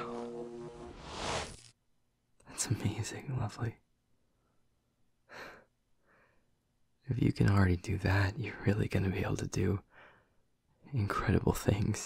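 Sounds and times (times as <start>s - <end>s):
man breathing: 5.3s - 6.5s, 9.9s - 10.4s.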